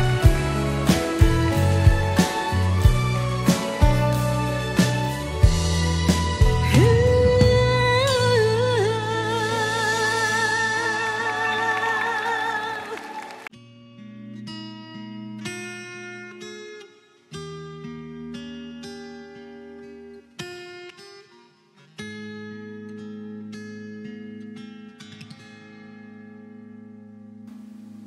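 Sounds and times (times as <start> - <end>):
low bass line: 0.0 - 9.0.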